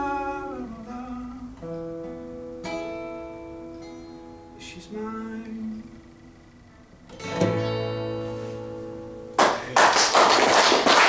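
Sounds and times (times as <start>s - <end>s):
acoustic guitar chord: 0.0s - 9.8s
applause: 9.4s - 11.0s.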